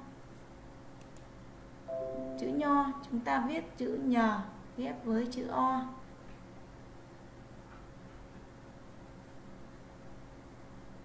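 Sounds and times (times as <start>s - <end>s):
faint hum and hiss: 0.0s - 11.0s
held musical note: 1.9s - 2.8s.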